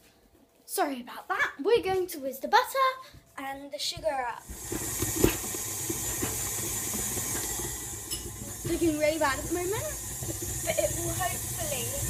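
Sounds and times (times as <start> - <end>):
food processor motor running: 4.4 - 12.0.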